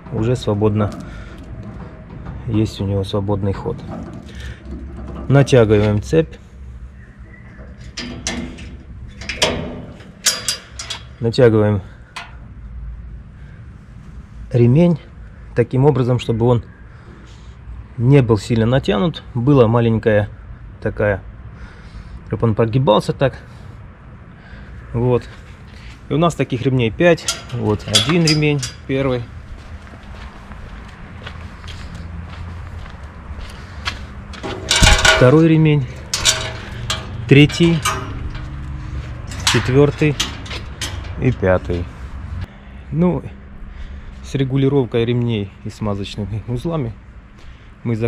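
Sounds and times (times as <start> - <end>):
chain clinking against steel frame: 7.6 - 11.3, 27.0 - 29.4, 34.3 - 42.4
footsteps on concrete: 29.5 - 34.6
low steady rumble: 34.3 - 44.5.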